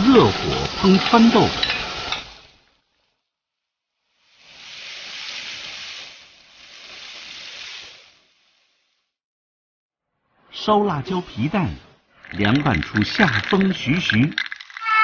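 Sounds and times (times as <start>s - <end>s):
vegetables sizzling in a wok: 0.0s - 3.1s, 4.0s - 9.2s.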